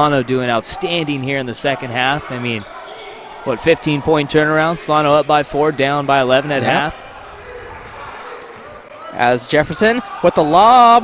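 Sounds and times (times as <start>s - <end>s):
echoing murmur of voices: 0.0s - 11.0s.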